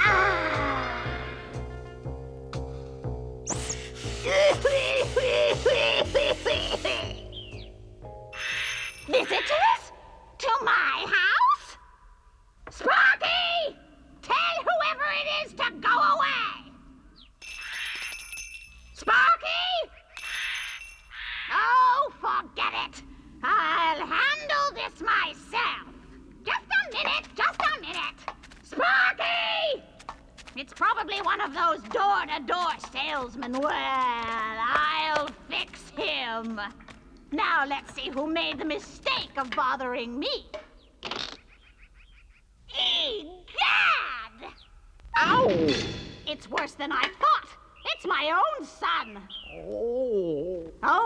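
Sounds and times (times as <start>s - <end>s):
cartoon character vocal sound: 4.2s - 7.2s, 49.5s - 50.8s.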